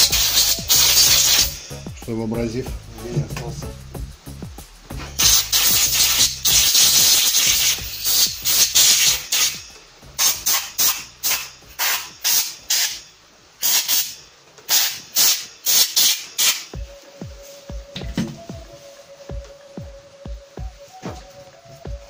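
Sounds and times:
bristle brush scrubbing metal: 0.0 - 2.5, 5.0 - 13.0, 13.6 - 19.8.

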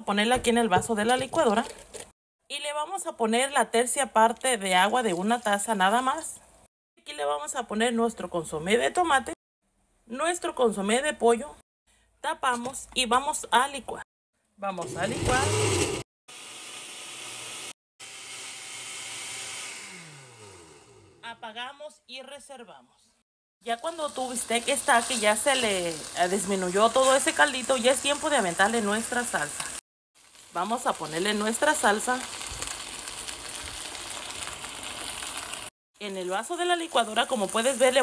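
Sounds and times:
blender motor running: 14.8 - 21.2
meat sizzling in a pot: 23.7 - 38.0.

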